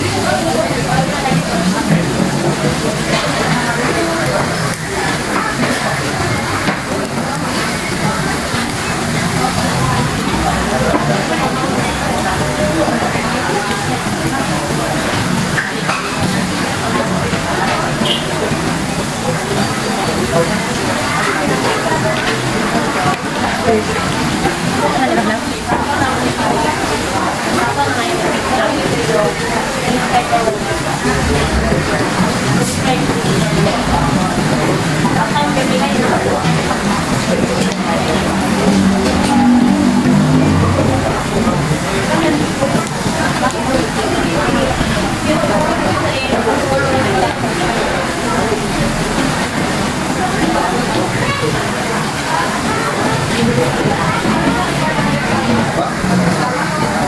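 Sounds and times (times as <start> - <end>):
many people talking: 0.0 - 57.0
background music: 37.3 - 42.7.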